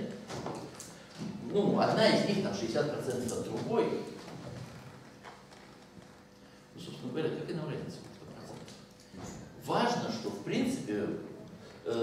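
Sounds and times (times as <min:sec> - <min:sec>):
faint steady hum: 0:00.0 - 0:12.0
person speaking: 0:01.3 - 0:04.2.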